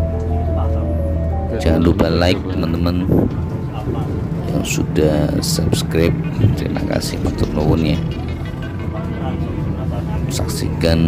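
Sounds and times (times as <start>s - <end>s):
background music: 0.0s - 11.0s
bus engine and tyres rumbling: 0.0s - 11.0s.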